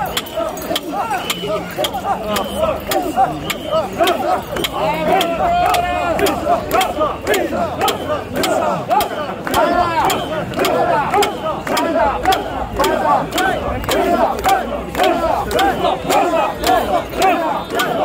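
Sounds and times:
crowd chanting in rhythm: 0:00.0 - 0:18.0
sharp rhythmic clicks: 0:00.0 - 0:18.0.

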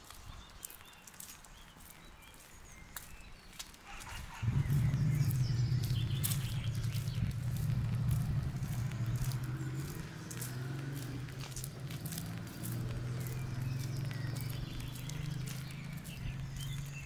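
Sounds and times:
footsteps on paving stones: 0:00.0 - 0:17.0
low motor hum: 0:04.1 - 0:17.0.

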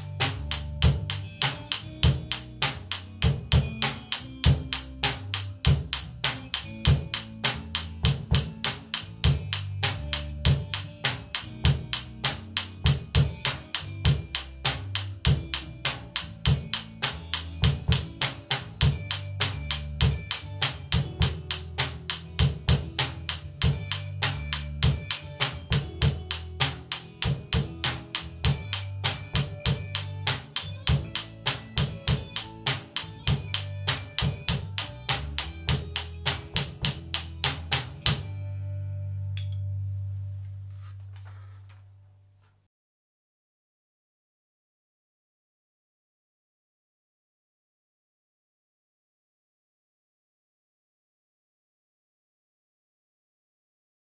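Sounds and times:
drum kit playing a groove: 0:00.0 - 0:38.4
backing track bass line: 0:00.0 - 0:42.4.

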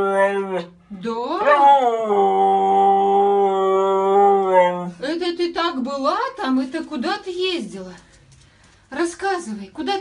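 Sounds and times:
dog howling: 0:00.0 - 0:00.7, 0:01.4 - 0:04.9.

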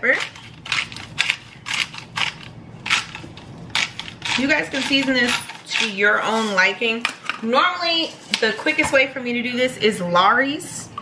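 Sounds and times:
pepper grinder grinding: 0:00.0 - 0:07.4.

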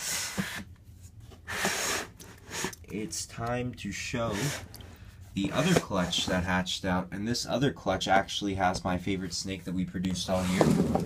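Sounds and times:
plastic tub scraping: 0:04.2 - 0:06.5, 0:10.1 - 0:11.0.

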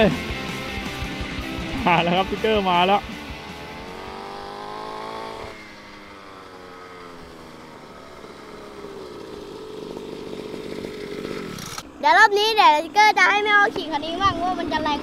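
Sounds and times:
mini dirt bike engine: 0:01.5 - 0:15.0.

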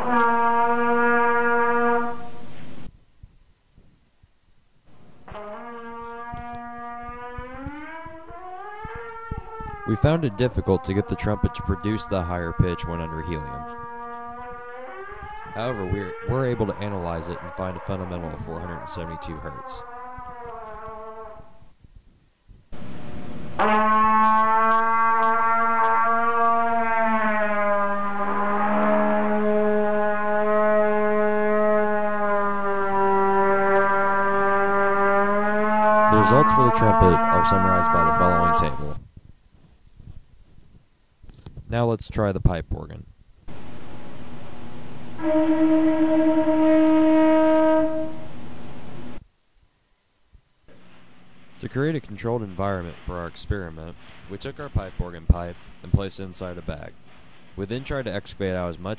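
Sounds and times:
trumpet sustained note bending upward: 0:00.0 - 0:02.8, 0:04.9 - 0:21.6, 0:22.8 - 0:39.0, 0:43.5 - 0:49.2.

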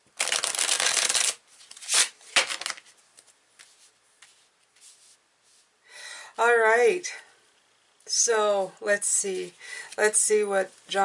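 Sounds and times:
playing cards being shuffled: 0:00.2 - 0:05.6.

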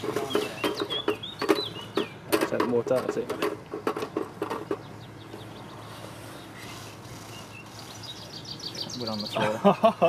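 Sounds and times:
low outdoor background: 0:00.0 - 0:10.0
high bird chirps: 0:00.3 - 0:02.3, 0:04.8 - 0:09.4.

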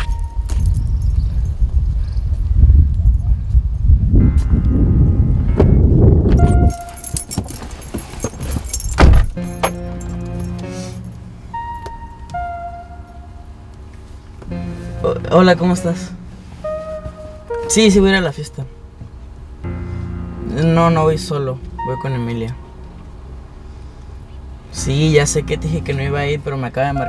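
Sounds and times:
keys jangling: 0:00.0 - 0:01.6, 0:06.4 - 0:11.2
heavy low rumble: 0:00.0 - 0:27.0
car door shutting: 0:06.3 - 0:10.6
background music with held notes: 0:09.3 - 0:27.0.

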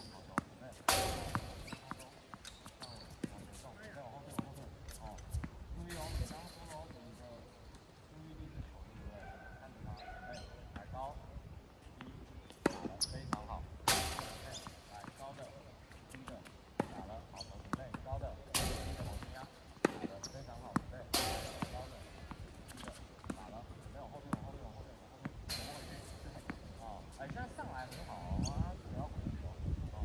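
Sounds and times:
balls bouncing on hard court: 0:00.0 - 0:07.1, 0:12.0 - 0:28.8
tennis balls hit with rackets: 0:00.0 - 0:07.1, 0:12.0 - 0:28.8.

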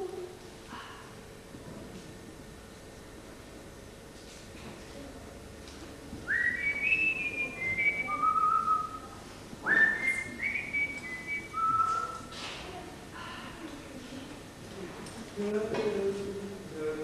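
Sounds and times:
person whistling: 0:06.3 - 0:12.3.

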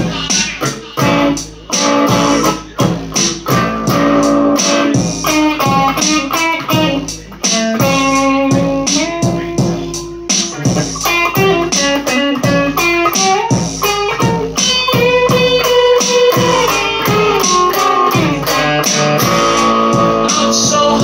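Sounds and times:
electric guitar lead: 0:00.0 - 0:21.0
steady beat: 0:00.0 - 0:21.0.

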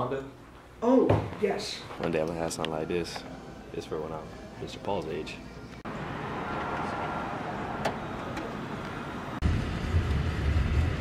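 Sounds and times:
car cabin road and engine noise: 0:05.8 - 0:11.0.

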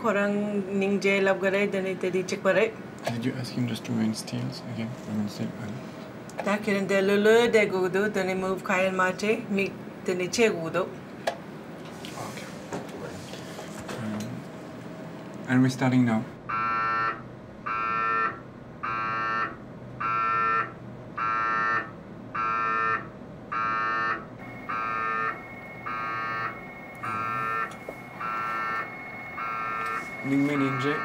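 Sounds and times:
mri scanner pulsing buzz: 0:16.4 - 0:31.0.

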